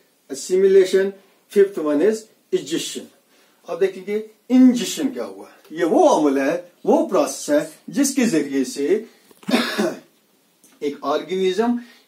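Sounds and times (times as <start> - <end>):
man coughing: 9.4 - 10.1.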